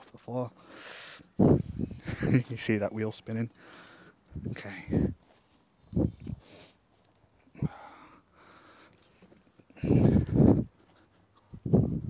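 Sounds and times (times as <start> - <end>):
man breathing heavily: 0.5 - 2.1, 3.5 - 12.0.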